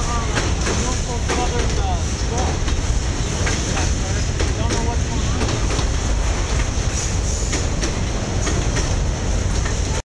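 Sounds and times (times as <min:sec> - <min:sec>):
steel wheels rumbling on rail: 0:00.0 - 0:10.0
wheels clicking over rail joints: 0:00.0 - 0:10.0.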